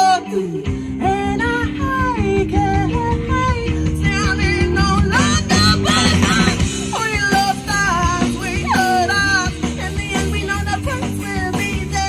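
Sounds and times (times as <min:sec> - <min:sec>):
bass guitar: 0:00.0 - 0:12.0
drums: 0:00.0 - 0:12.0
electric guitars: 0:00.0 - 0:12.0.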